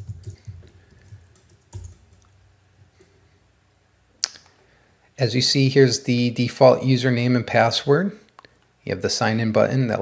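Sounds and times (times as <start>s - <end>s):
computer keyboard keystrokes: 0.0s - 2.3s.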